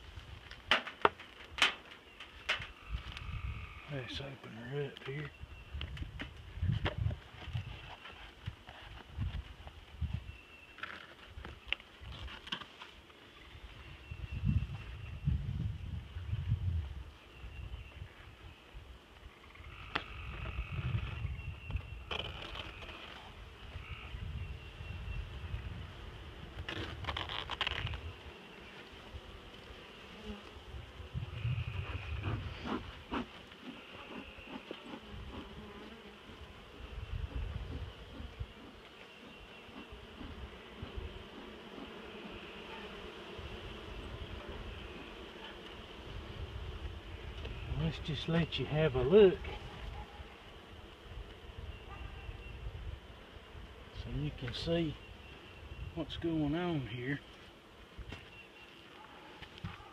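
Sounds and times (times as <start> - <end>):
honeybees buzzing: 13.0 - 59.9.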